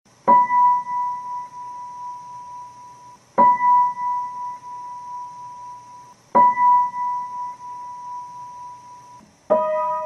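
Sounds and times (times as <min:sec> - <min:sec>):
high piano note ringing: 0:00.3 - 0:10.0.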